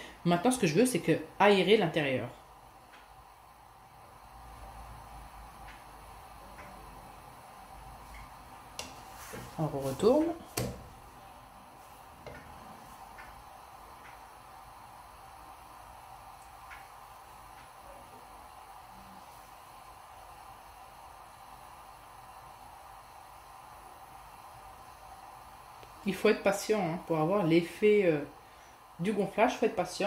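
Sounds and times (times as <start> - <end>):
gas burner hissing: 0.0 - 30.0.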